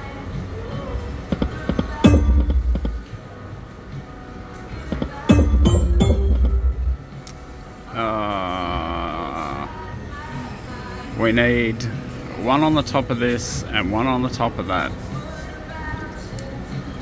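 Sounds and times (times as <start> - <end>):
slot machine background music: 1.7 - 3.2, 4.9 - 7.2
deep booming hits: 1.8 - 3.2, 5.3 - 7.1.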